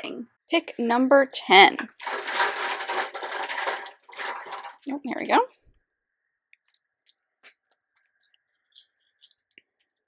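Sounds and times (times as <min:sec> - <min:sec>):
plastic capsules rattling: 0:01.9 - 0:04.9.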